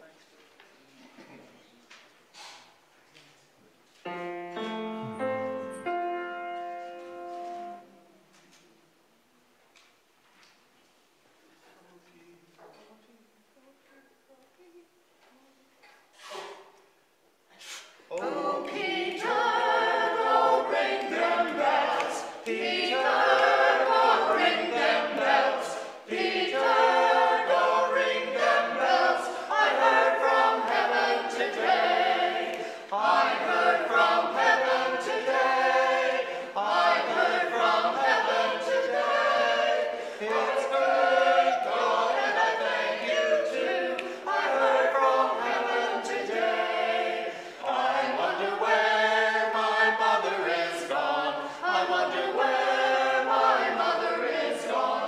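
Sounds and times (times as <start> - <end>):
mixed choir singing unaccompanied: 18.1 - 55.0.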